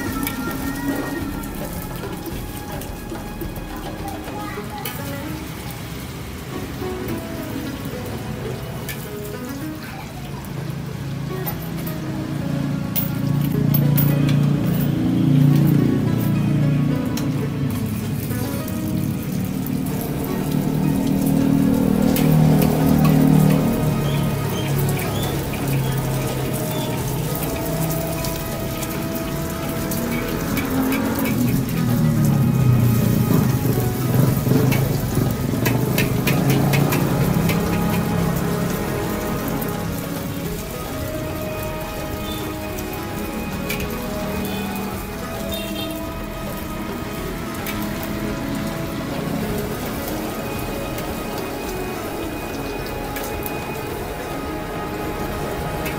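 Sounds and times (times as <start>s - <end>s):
egg sizzling in hot oil: 0.0s - 9.9s, 17.5s - 55.9s
music: 0.0s - 55.9s.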